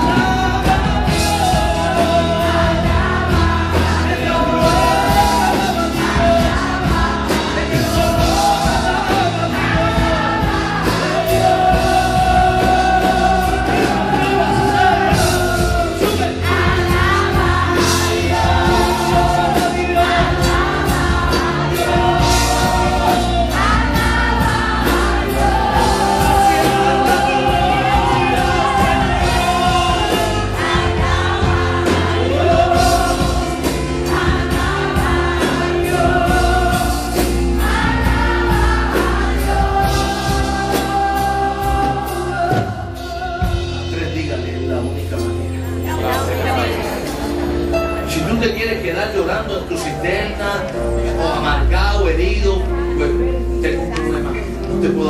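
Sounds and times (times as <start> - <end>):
band with bass and drums: 0.0 - 55.0
group of singers: 0.0 - 55.0
lead singing voice: 0.0 - 55.0.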